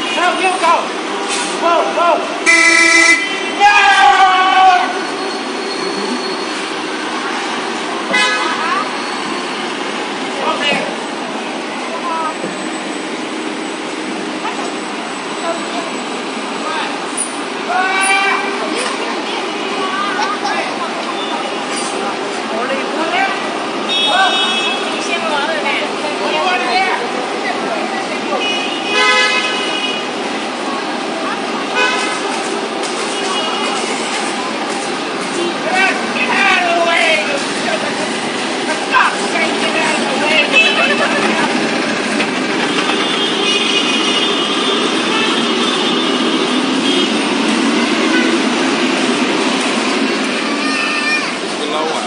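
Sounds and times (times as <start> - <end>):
street traffic: 0.0 - 52.0
vehicle horn toot: 2.4 - 3.6, 23.9 - 25.1, 28.4 - 30.1, 42.7 - 47.2.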